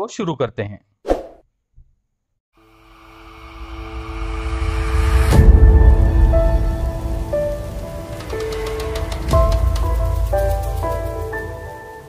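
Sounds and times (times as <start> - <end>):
low rumble: 2.7 - 11.7
rain-like patter: 3.6 - 12.0.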